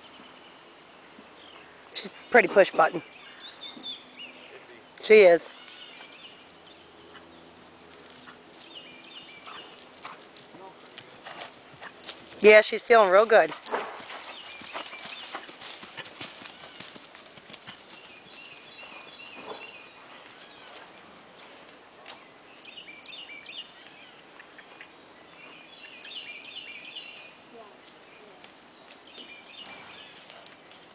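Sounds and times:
horse hoofbeats on grass: 6.0 - 23.7, 25.3 - 30.9.

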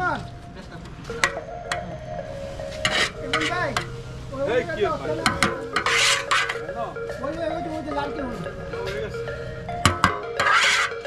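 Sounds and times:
stirring wet contents of pot: 5.3 - 6.6, 10.4 - 11.0.

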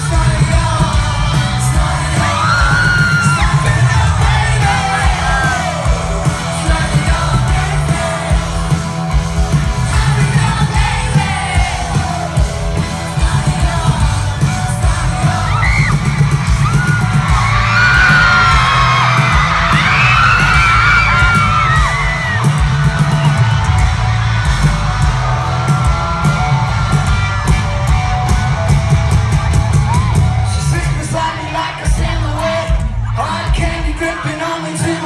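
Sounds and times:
rock band playing loudly: 0.0 - 35.0
crowd screaming: 0.8 - 13.1, 13.8 - 32.0.

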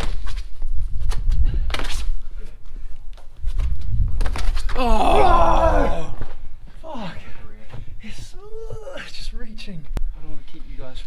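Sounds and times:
man groaning: 4.8 - 6.2.

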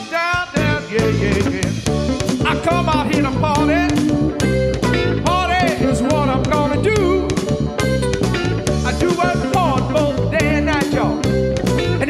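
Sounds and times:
funk band playing: 0.0 - 12.0.

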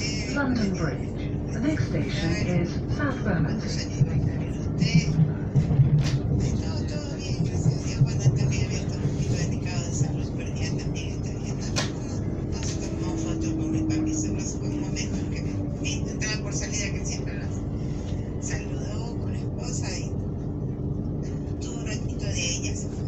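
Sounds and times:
indistinct passenger voices: 0.0 - 23.0
train wheels rumbling on track: 0.0 - 23.0.

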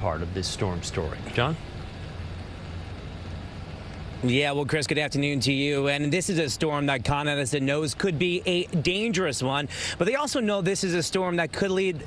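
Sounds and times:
faint hiss: 0.0 - 12.0
low outdoor background rumble: 0.0 - 12.0.

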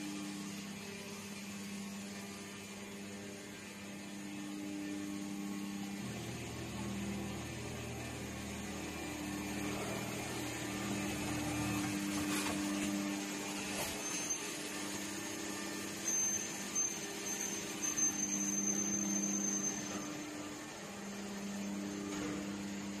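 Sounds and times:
machine motor and hydraulics hum: 0.0 - 23.0.

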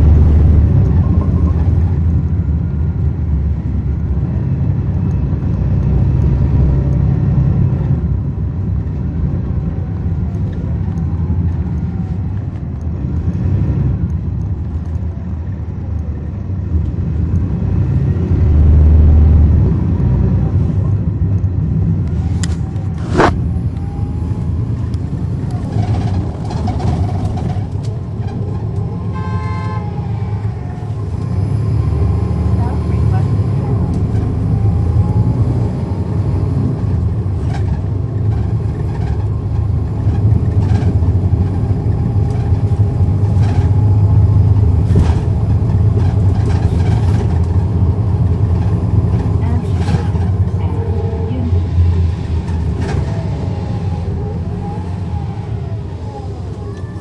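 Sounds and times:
bus diesel engine: 0.0 - 57.0
vehicle horn toot: 29.1 - 30.0.

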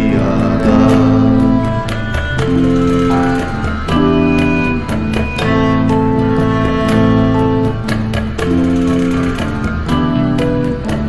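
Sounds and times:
electric guitar melody: 0.0 - 11.0
low bass notes: 0.0 - 11.0
percussion hits: 0.0 - 11.0.

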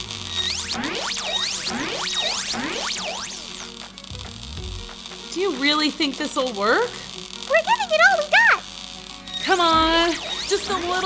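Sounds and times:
cartoon electric zap effect: 0.0 - 11.0.

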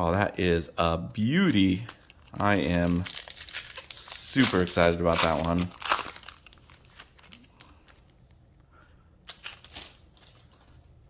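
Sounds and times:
foil wrapper crinkling: 1.2 - 8.2, 9.2 - 10.8.

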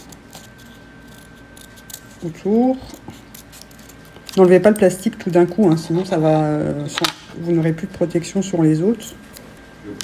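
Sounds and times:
scissors snipping paper: 0.0 - 6.2.

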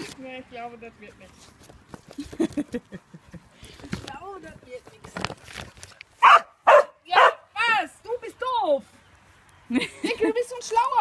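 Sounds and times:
young dog barking: 6.2 - 7.5.

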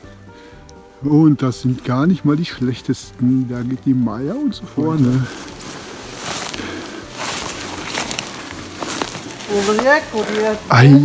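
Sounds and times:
footsteps through undergrowth: 0.0 - 11.0
person's voice: 1.0 - 5.4, 9.5 - 11.0.

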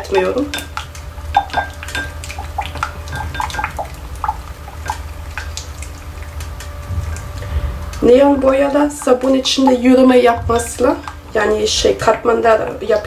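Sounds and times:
utensil clinking against glass: 3.1 - 3.9.

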